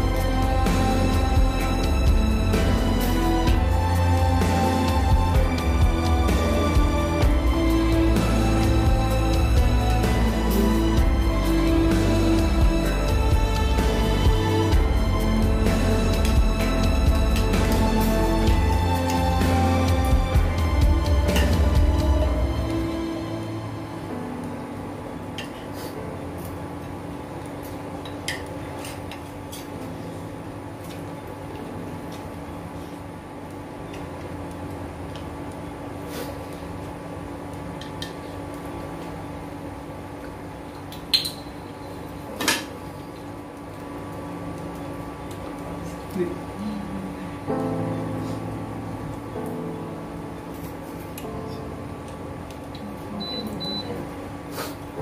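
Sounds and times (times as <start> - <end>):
steady hum: 0.0 - 55.0.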